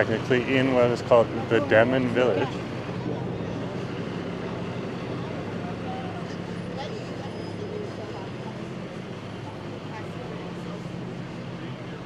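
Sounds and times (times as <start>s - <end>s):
low engine hum: 0.0s - 12.0s
road noise: 0.0s - 12.0s.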